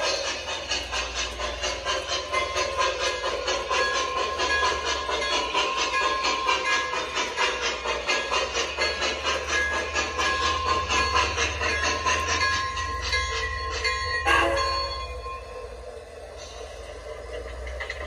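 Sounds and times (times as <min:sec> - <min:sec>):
model steam locomotive chuffing: 0:00.0 - 0:18.0.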